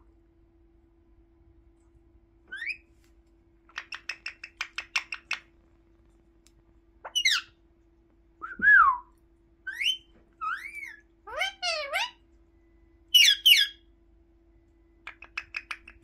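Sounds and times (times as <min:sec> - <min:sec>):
parakeet whistling: 0:02.5 - 0:02.9, 0:07.1 - 0:07.6, 0:09.7 - 0:12.2, 0:13.1 - 0:13.8.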